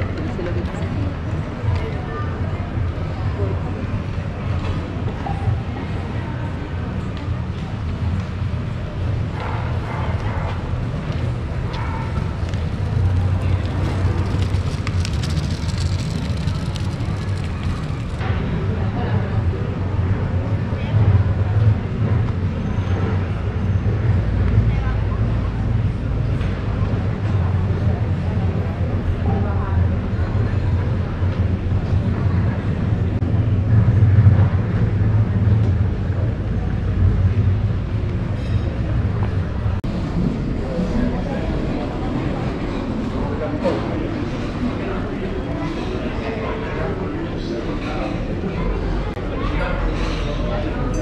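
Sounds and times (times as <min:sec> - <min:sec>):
distant voices of passers-by: 0:00.0 - 0:51.0
steady low rumble: 0:10.7 - 0:22.3, 0:27.9 - 0:43.4.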